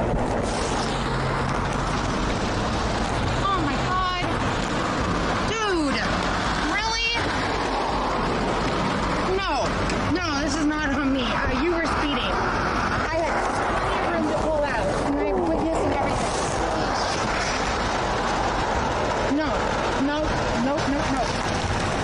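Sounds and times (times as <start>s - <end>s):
steady rushing noise: 0.0s - 22.0s
people talking: 3.4s - 4.3s, 5.5s - 7.3s, 9.3s - 12.4s, 13.0s - 17.2s, 19.3s - 21.3s.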